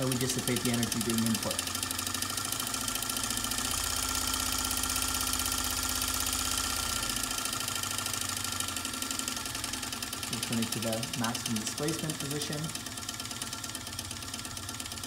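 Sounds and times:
small electric motor buzzing: 0:00.0 - 0:15.0.

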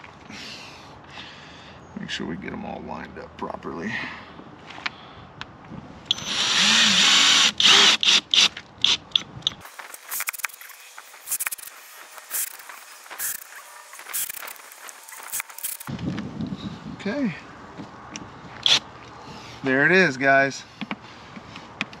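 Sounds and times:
cordless drill driving screws: 0:06.1 - 0:09.0, 0:09.8 - 0:15.9.

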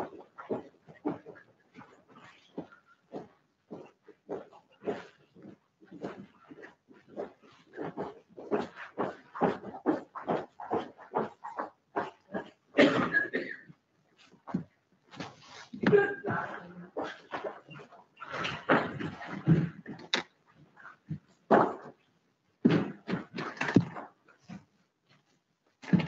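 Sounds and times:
footsteps on tiled floor: 0:00.0 - 0:13.0, 0:14.1 - 0:22.0.

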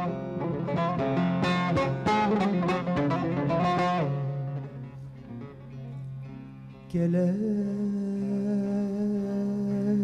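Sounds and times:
man singing a long note: 0:06.9 - 0:10.0.

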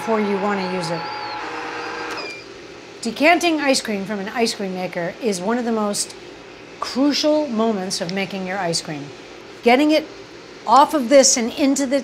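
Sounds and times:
ice cream maker motor humming: 0:00.0 - 0:02.5.

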